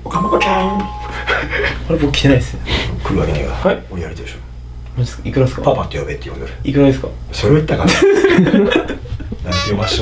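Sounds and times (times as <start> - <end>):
men chuckling: 1.2 - 1.9, 7.9 - 10.0
men talking: 9.4 - 10.0.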